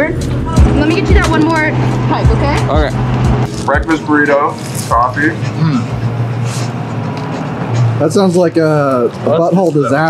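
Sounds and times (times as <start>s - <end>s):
outdoor background noise: 0.0s - 10.0s
vehicle engine idling: 0.1s - 10.0s.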